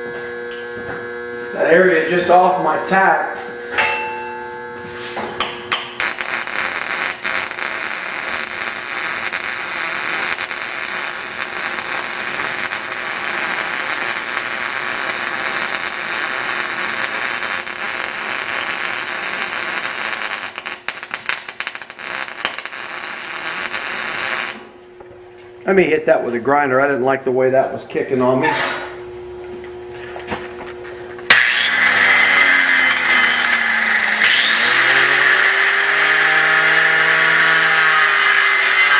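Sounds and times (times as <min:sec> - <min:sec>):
welding arc crackling: 0:05.4 - 0:24.8, 0:31.3 - 0:38.9.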